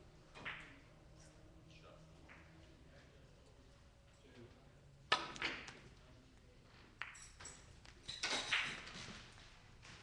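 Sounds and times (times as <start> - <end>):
cue striking billiard ball: 5.1 - 5.8.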